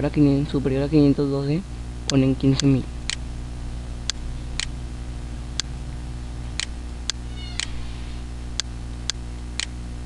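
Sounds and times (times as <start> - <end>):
steady low hum: 0.0 - 10.0
sharp clicks: 6.6 - 7.8, 8.6 - 9.8
faint high falling cry: 7.3 - 8.2.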